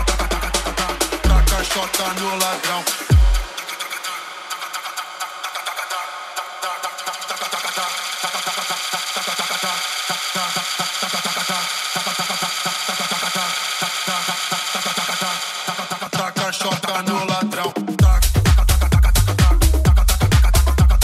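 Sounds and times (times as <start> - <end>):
house music with fast pulse: 0.0 - 21.0.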